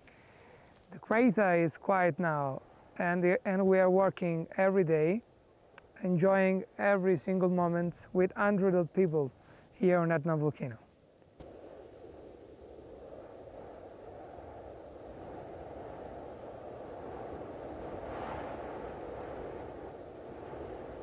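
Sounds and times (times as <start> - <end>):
rushing rumbling outdoor noise: 11.0 - 21.0.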